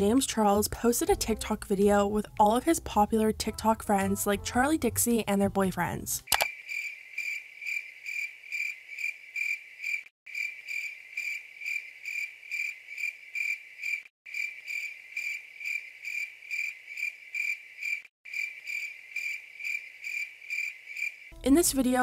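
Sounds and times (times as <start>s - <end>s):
cricket chirping: 6.4s - 21.3s.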